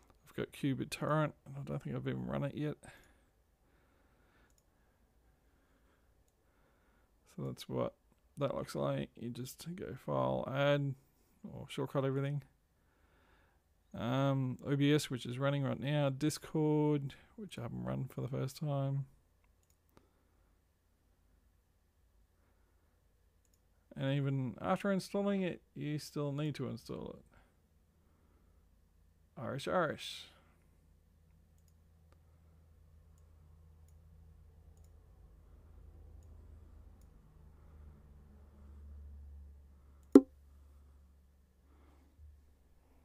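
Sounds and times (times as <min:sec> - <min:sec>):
computer mouse clicks: 0:04.4 - 0:04.7, 0:19.4 - 0:20.0.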